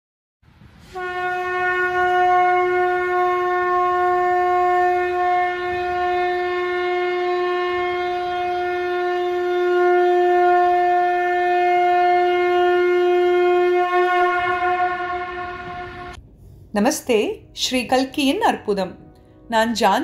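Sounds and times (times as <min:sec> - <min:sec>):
sustained musical tone: 0:02.5 - 0:16.6.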